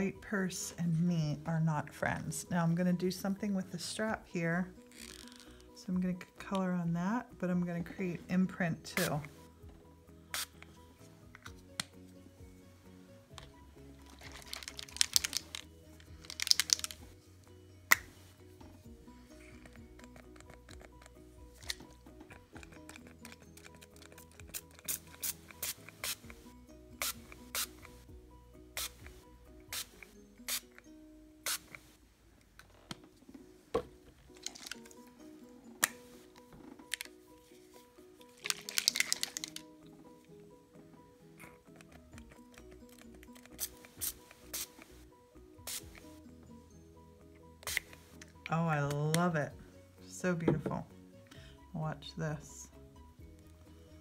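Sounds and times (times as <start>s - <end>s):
background music: 0.0s - 54.0s
spray bottle hissing: 10.3s - 10.6s, 24.5s - 26.4s, 27.0s - 27.9s, 28.8s - 29.1s, 29.7s - 30.7s, 31.4s - 31.8s, 43.6s - 44.9s, 45.6s - 46.0s, 47.6s - 48.0s.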